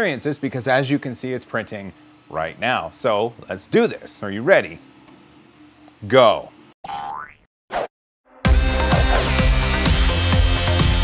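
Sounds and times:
loud electronic music: 0:08.4 - 0:11.0.

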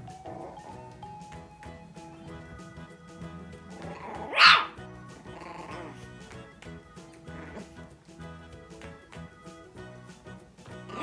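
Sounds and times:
background music: 0:00.0 - 0:11.0
puppy barking: 0:03.7 - 0:06.0.

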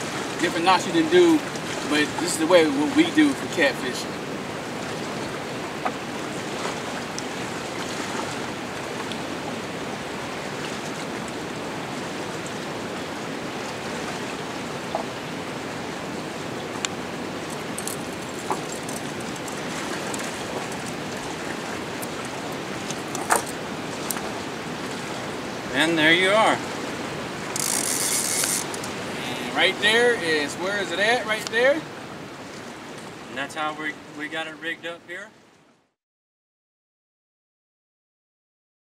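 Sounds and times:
river water rushing: 0:00.0 - 0:35.6.

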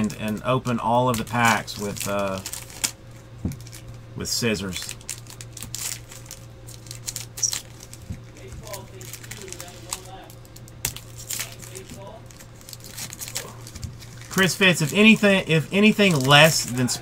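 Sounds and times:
cards rustling: 0:00.0 - 0:17.0
foil wrappers crinkling: 0:00.0 - 0:17.0.

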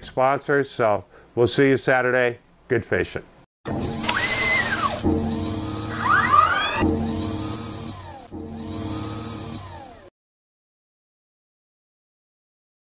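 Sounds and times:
servo motor whirring: 0:03.7 - 0:10.1.

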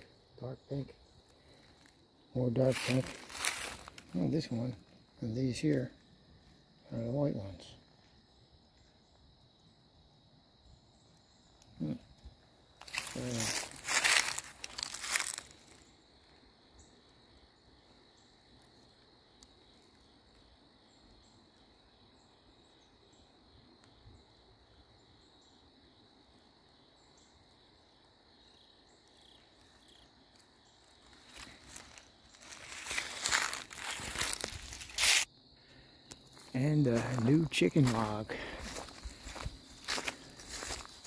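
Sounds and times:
high insect drone: 0:00.0 - 0:41.0
footsteps crunching dry leaves: 0:02.6 - 0:04.4, 0:12.8 - 0:15.8, 0:30.9 - 0:35.3, 0:36.1 - 0:41.0.

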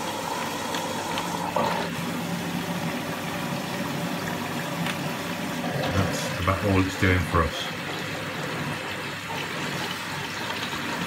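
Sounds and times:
washing machine water running: 0:00.0 - 0:11.0.

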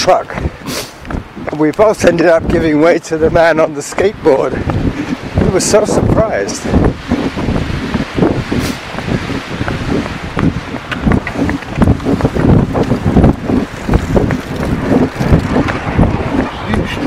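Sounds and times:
wind buffeting microphone: 0:00.0 - 0:17.0.

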